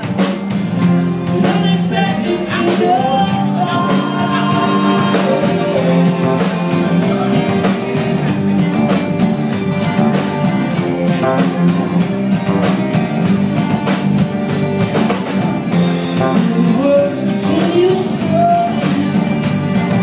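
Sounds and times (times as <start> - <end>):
drum kit steady beat: 0.0 - 20.0
electric bass: 0.0 - 20.0.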